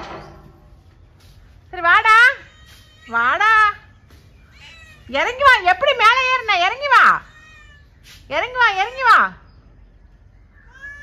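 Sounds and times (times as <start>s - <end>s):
cat meowing: 7.0s - 8.0s, 10.6s - 11.0s.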